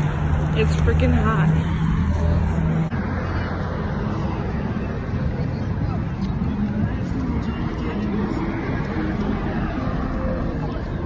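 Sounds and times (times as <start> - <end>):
faint voices: 0.0 - 11.0
road traffic rumble: 0.0 - 11.0.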